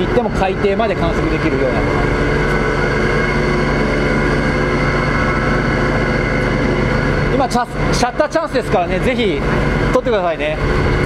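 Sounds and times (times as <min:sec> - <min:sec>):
ship deck machinery humming: 0:00.0 - 0:11.0.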